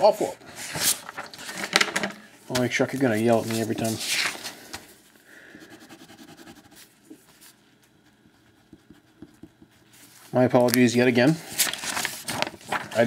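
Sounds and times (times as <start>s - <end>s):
paper rustling: 0.5s - 5.0s, 9.8s - 13.0s
pen tapping on table: 8.7s - 9.7s.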